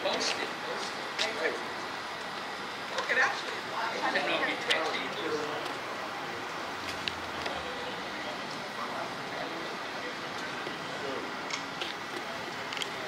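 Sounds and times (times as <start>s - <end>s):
faint distant voices: 0.0s - 13.0s.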